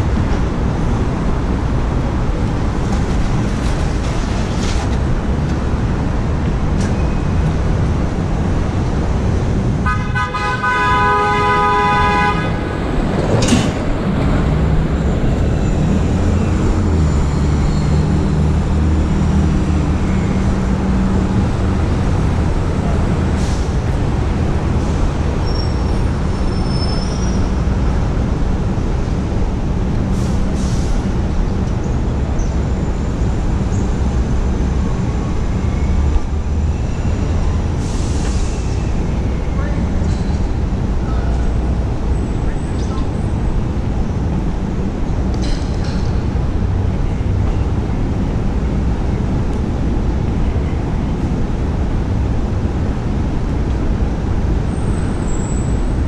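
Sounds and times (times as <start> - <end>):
passing traffic rumble: 0.0 - 56.0
vehicle horn: 9.8 - 12.8.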